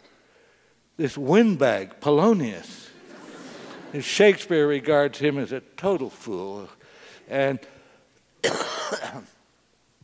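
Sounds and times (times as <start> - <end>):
man coughing into microphone: 8.4 - 9.4.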